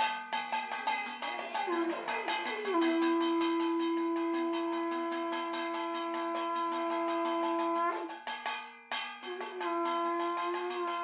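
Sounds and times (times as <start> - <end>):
hand bell ringing: 0.0 - 11.0
conch shell blown: 1.6 - 8.3, 9.2 - 11.0.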